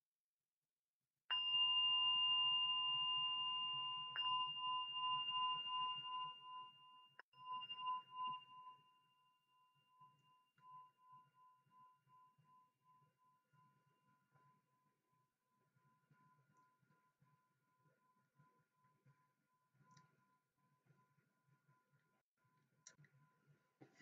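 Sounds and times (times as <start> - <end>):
meditation bell ringing: 1.3 - 11.4.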